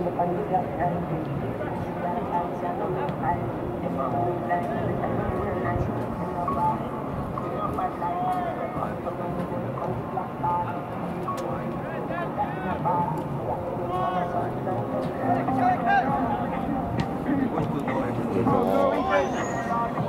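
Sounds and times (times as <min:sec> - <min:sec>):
crowd of voices calling and talking: 0:00.0 - 0:20.0.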